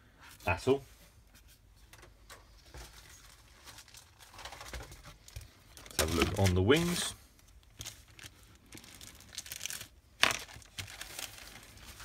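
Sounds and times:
plastic bag rustling and crinkling: 0:02.2 - 0:12.0.

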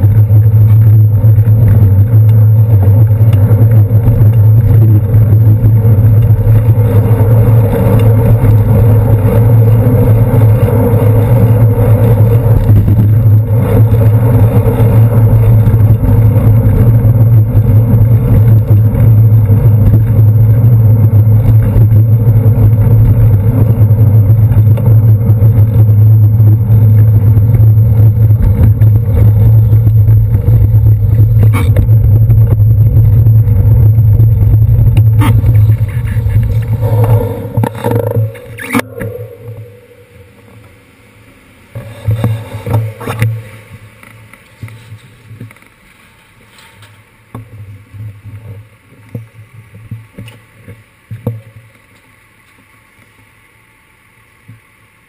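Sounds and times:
bicycle riding rumble: 0:00.0 - 0:55.0.

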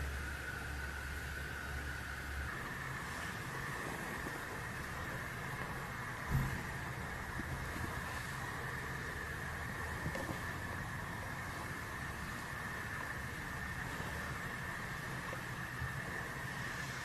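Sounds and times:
background hum and hiss: 0:00.0 - 0:17.0
faint high whine: 0:00.0 - 0:17.0.

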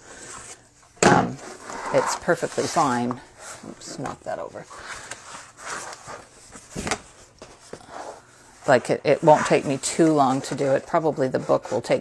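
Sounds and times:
paper rustling and sliding: 0:04.7 - 0:11.9.

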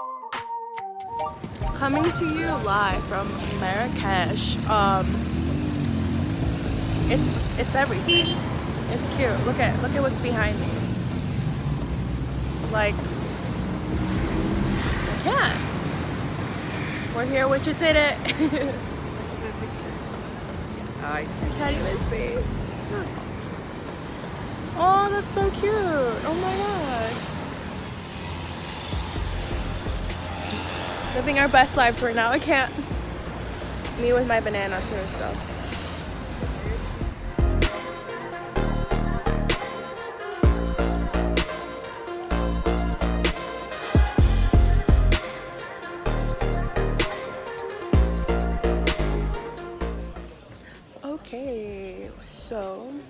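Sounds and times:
rumble of passing cars: 0:01.2 - 0:53.0
vehicle engine hum: 0:01.4 - 0:39.6.

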